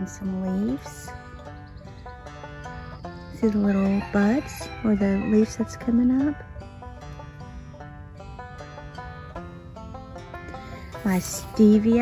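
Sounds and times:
instrumental background music: 0.0 - 12.0.

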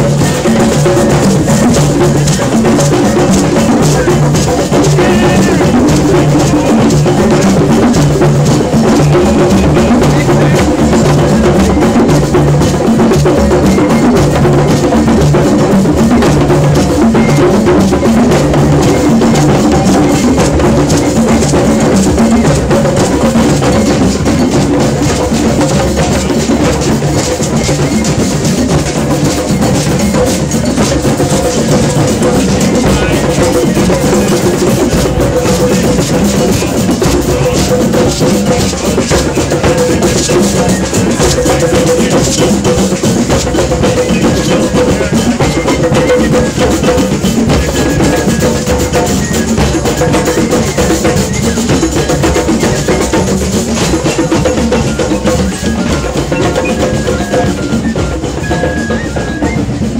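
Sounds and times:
hand drums playing: 0.0 - 59.9.

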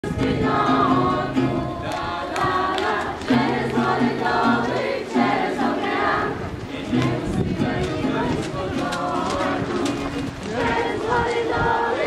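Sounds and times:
strummed acoustic guitar: 0.0 - 1.9, 3.3 - 10.8
children singing in unison: 0.0 - 12.0.

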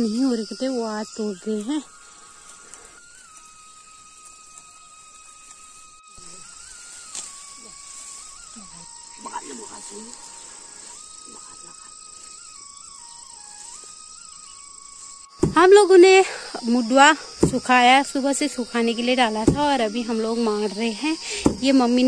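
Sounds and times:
faint music with held notes: 0.0 - 15.5
insects chorus: 0.0 - 22.0.

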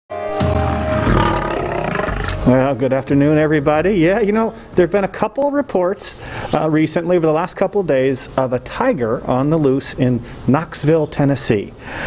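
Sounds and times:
music sting: 0.1 - 2.9
deep rumble: 0.5 - 2.7
big cat roaring: 0.6 - 2.6.

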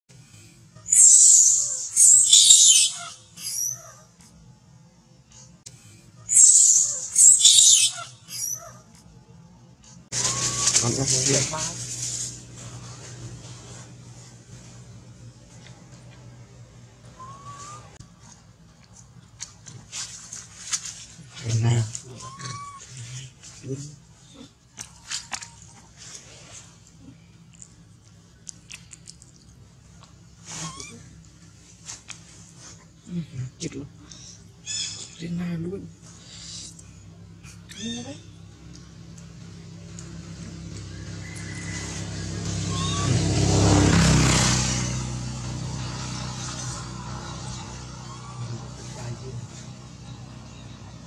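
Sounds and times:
baby monkey shrieking: 0.8 - 4.1, 6.3 - 8.9, 10.1 - 11.2, 17.2 - 18.0, 22.1 - 23.0, 30.5 - 31.1, 34.6 - 35.2, 37.7 - 38.2, 41.6 - 43.4, 47.4 - 48.8
short high squeak: 10.1 - 11.1.

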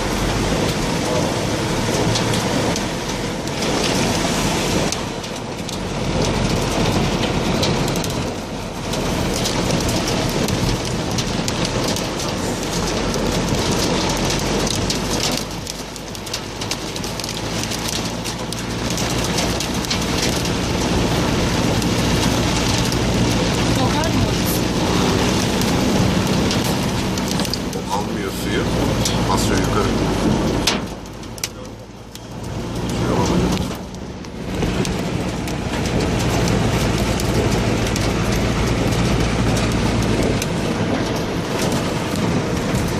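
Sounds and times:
hail and rain drumming on roof: 0.0 - 42.9.

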